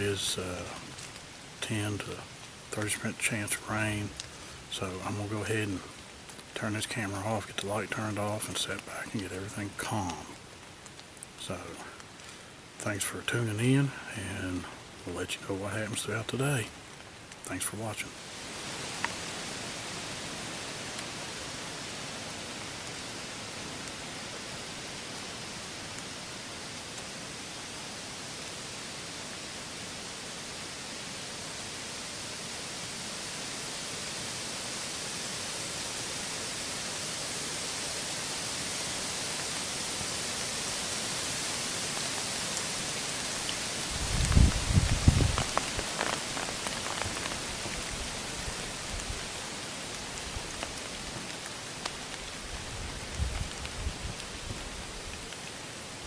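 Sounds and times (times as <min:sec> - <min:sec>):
outdoor hiss: 0:00.0 - 0:56.0
low thumps and crackling: 0:43.9 - 0:49.2.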